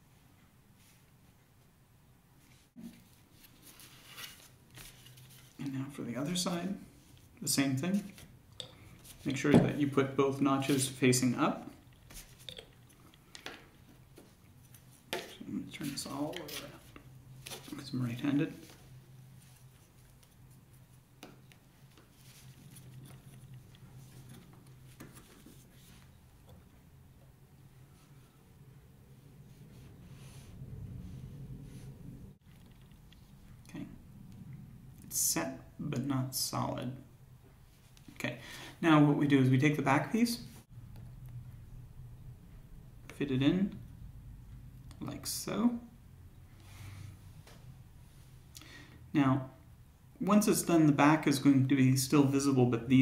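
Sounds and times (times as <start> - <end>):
scratchy rustles: 2.5 - 5.6
low hum: 25.6 - 35.1, 40.7 - 45.0.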